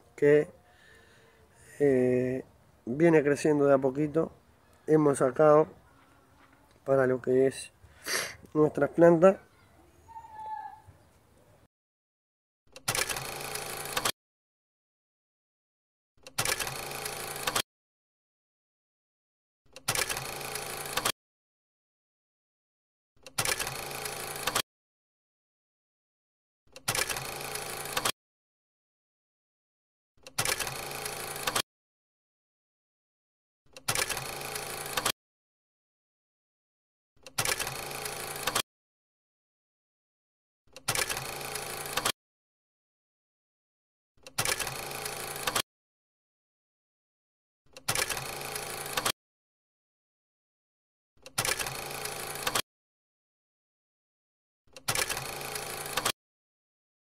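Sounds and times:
film projector rattle: 12.8s - 14.1s, 16.3s - 17.6s, 19.8s - 21.2s, 23.3s - 24.6s, 26.8s - 28.1s, 30.3s - 31.6s, 33.8s - 35.2s, 37.3s - 38.6s, 40.8s - 42.2s, 44.3s - 45.6s, 47.8s - 49.2s, 51.3s - 52.6s, 54.8s - 56.2s.

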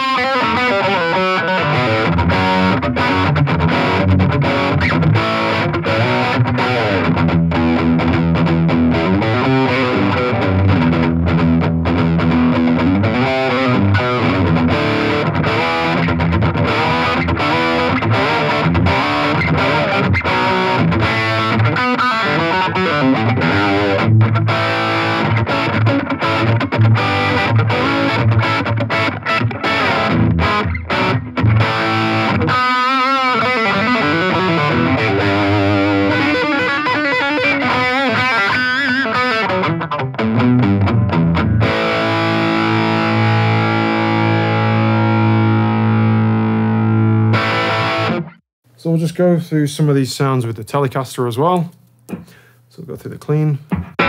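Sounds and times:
distorted electric guitar riffing: 0.0s - 48.4s.

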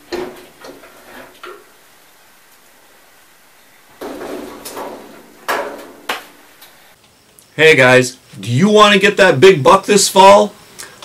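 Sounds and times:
metal scraping on wood stove: 0.0s - 1.7s.

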